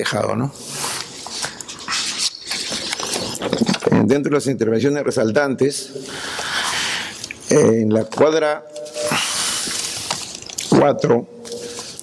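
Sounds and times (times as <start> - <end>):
paper rustling: 0.8 - 3.9, 8.8 - 10.8.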